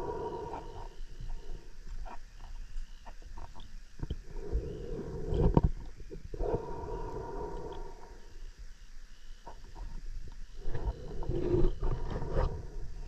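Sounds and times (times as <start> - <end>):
diver breathing underwater: 4.3 - 8.4.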